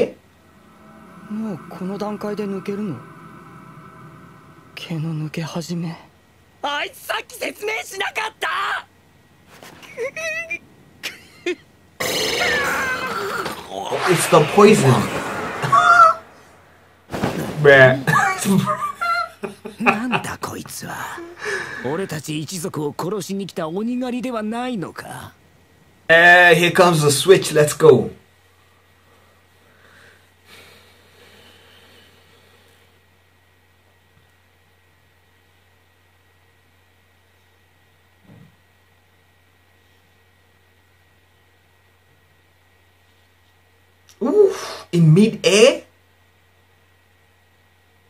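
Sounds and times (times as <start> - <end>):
low steady hum: 0.0 - 44.4.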